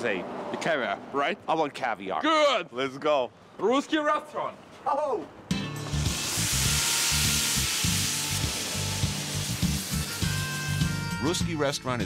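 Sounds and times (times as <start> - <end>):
background music with bass: 5.5 - 12.0
food sizzling in a pan: 5.9 - 11.0.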